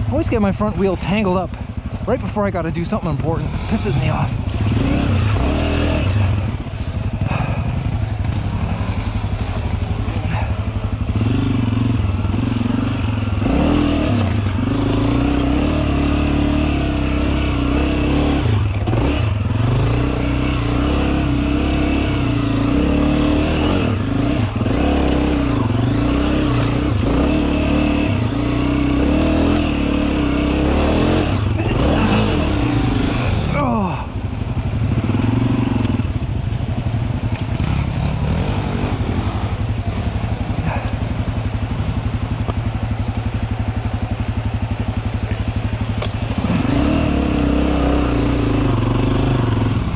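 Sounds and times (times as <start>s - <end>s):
dirt bike engine revving: 0.0s - 49.9s.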